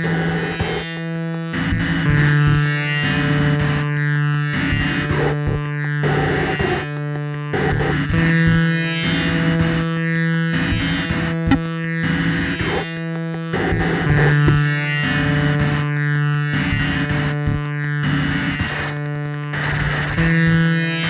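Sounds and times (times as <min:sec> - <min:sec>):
filtered drum machine beats: 0:04.6 - 0:06.9, 0:07.5 - 0:09.9, 0:10.6 - 0:15.9, 0:16.5 - 0:17.9
held distorted synth tone: 0:07.5 - 0:20.8.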